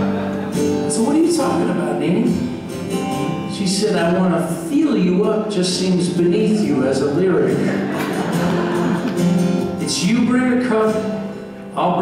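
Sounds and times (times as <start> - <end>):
person laughing: 0.0 - 0.7, 7.6 - 9.3
acoustic guitar strumming: 0.0 - 12.0.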